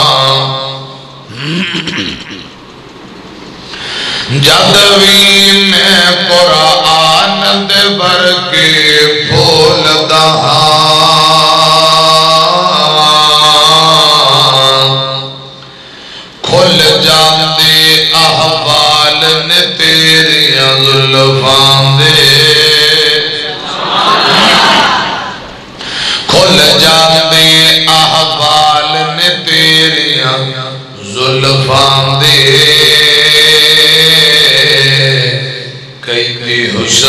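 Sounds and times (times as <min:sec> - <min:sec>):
man chanting into a microphone: 0:00.0 - 0:02.4, 0:04.0 - 0:15.8, 0:16.4 - 0:23.7, 0:25.9 - 0:37.0.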